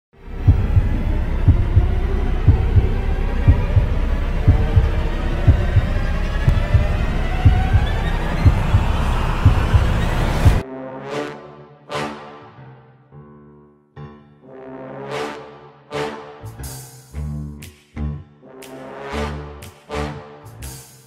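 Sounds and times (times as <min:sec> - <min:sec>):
steady low drone: 0:00.2 - 0:10.6
tone rising in pitch: 0:00.2 - 0:10.6
heartbeat-like double thump: 0:00.4 - 0:10.6.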